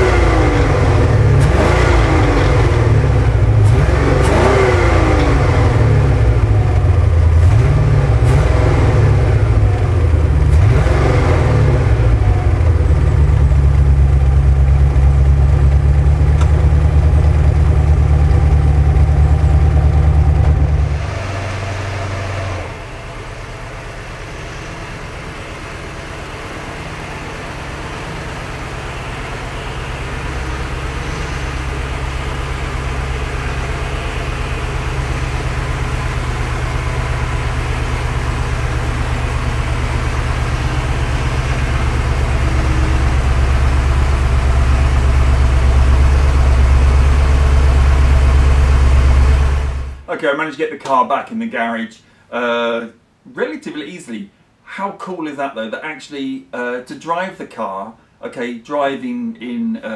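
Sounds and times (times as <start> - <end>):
car engine running: 0.0 - 50.1.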